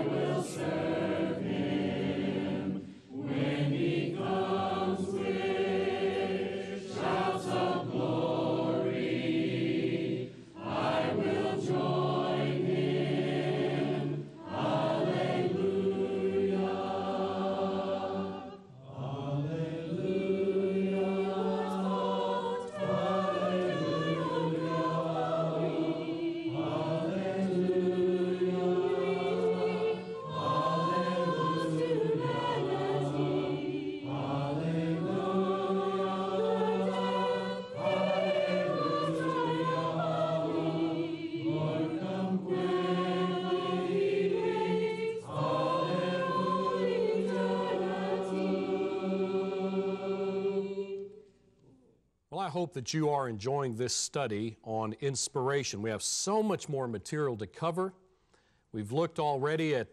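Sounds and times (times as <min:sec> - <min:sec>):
choir singing a hymn: 0:00.0 - 0:51.3.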